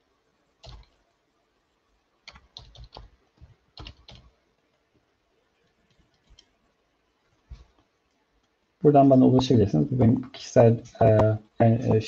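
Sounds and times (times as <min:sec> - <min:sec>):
faint keyboard typing: 0:00.5 - 0:01.2, 0:02.2 - 0:08.7.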